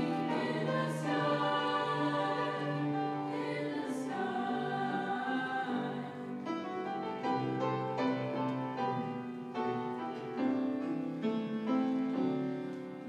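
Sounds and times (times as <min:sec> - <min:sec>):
girls' choir singing: 0:00.0 - 0:09.0.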